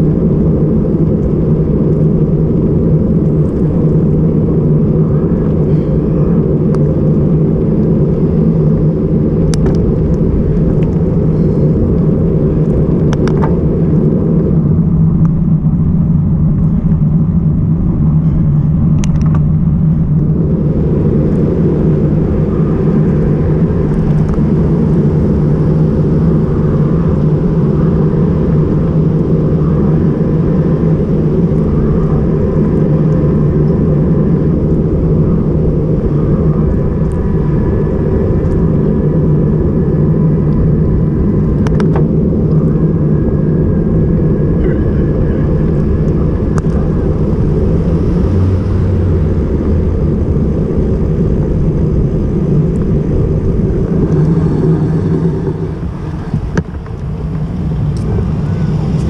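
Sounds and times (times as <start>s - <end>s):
wind buffeting: 0.0s - 59.0s.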